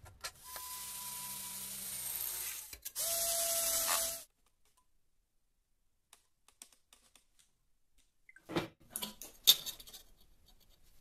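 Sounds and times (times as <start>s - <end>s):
electric drill whining: 0.4s - 4.2s.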